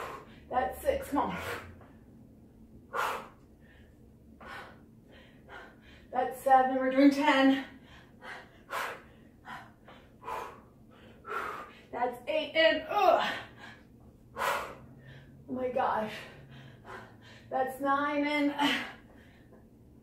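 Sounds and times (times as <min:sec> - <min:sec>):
woman breathing hard: 0:00.0 - 0:00.5, 0:02.8 - 0:06.2, 0:07.5 - 0:12.0, 0:13.0 - 0:15.5, 0:16.1 - 0:17.6, 0:18.6 - 0:19.8.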